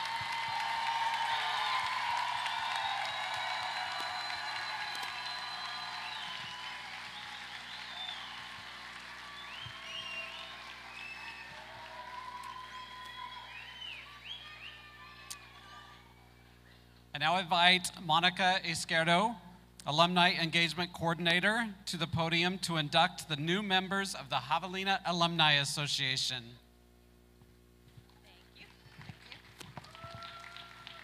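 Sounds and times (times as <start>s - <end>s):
whoops and shouts: 0.0s - 8.3s, 9.1s - 16.3s, 29.8s - 31.0s
crowd applauding and cheering: 0.0s - 16.1s, 28.6s - 31.0s.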